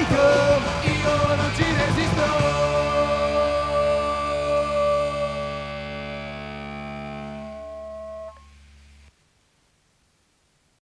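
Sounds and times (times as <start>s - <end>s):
rock guitar chord: 0.0s - 9.0s
low bass note: 3.8s - 9.1s
faint hiss: 6.4s - 10.8s.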